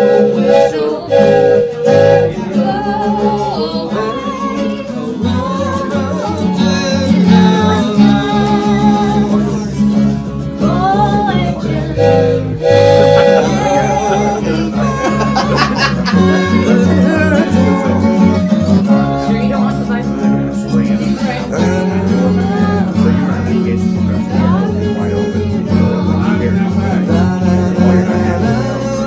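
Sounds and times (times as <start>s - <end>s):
woman singing into microphone: 0.0s - 9.8s, 10.4s - 20.1s, 20.7s - 29.0s
acoustic guitar strumming: 0.0s - 29.0s.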